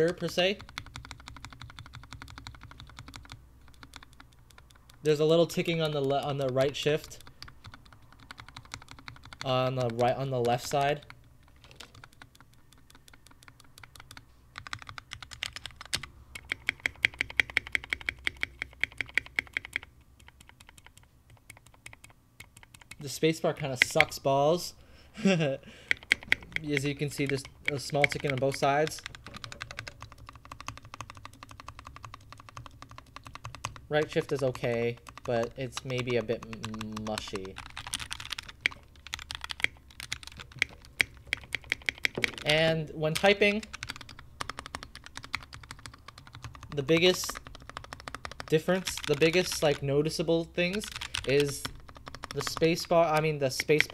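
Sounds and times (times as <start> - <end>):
mechanical keyboard key clicks: 0.6 - 5.0, 11.8 - 23.0, 25.9 - 42.5.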